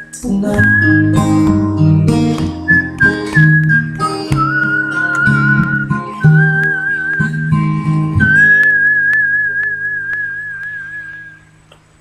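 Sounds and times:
backing music: 0.0s - 11.4s
man whistling a melody: 0.0s - 11.6s.

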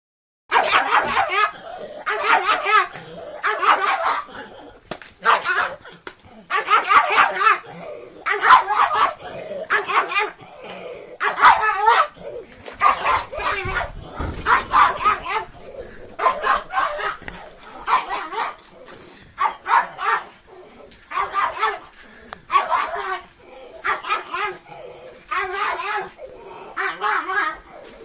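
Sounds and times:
plastic bag rustling: 12.6s - 19.2s.

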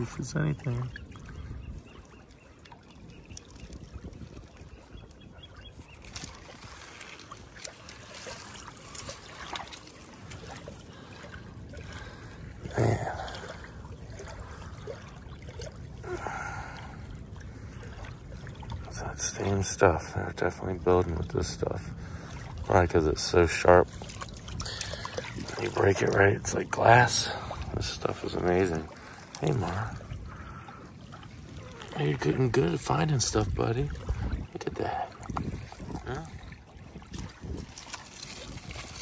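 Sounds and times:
water lapping at shoreline: 0.0s - 39.0s.

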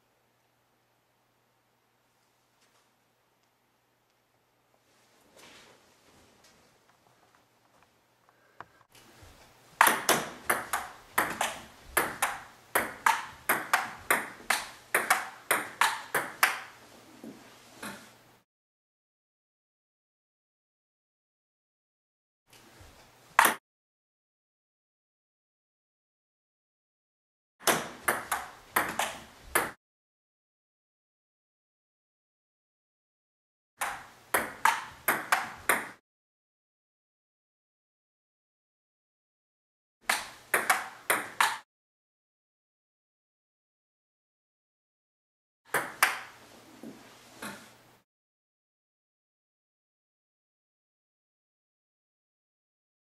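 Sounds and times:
table tennis ball pocks: 9.8s - 16.8s, 27.6s - 29.8s, 33.8s - 36.0s, 40.1s - 41.6s, 45.7s - 46.4s.

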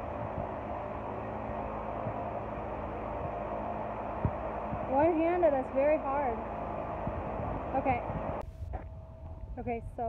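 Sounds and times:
fans whooshing hum: 0.0s - 10.0s
wind thumps on microphone: 4.2s - 5.4s, 6.9s - 10.0s.

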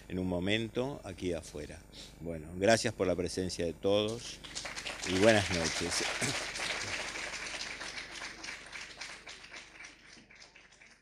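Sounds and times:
audience applauding: 4.2s - 11.0s.

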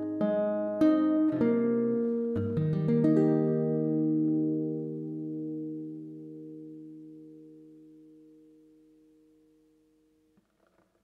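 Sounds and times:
acoustic guitar chord ringing: 0.0s - 10.4s.

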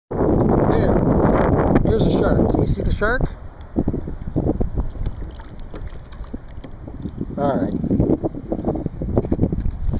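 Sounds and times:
wind rumbling on microphone: 0.1s - 9.9s
water moving along boat hull: 3.3s - 9.9s
shark splashing at surface: 4.8s - 7.2s.

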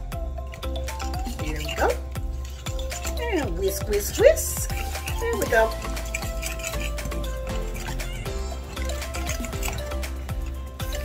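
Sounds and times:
background music with held notes: 0.0s - 11.0s
whisk scraping batter in bowl: 1.2s - 11.0s.

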